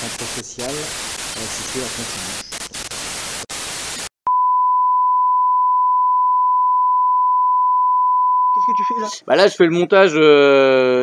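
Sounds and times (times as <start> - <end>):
tv static hiss: 0.0 - 4.1
continuous test tone beep: 4.3 - 9.2.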